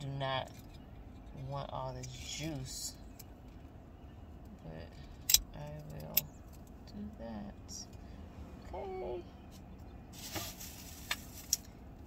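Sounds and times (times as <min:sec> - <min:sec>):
rustling: 0:10.1 - 0:11.8.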